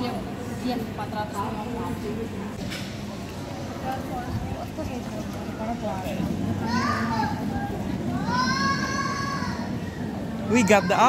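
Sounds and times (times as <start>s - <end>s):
people and children talking: 0.0s - 11.0s
child's high voice: 6.6s - 9.8s.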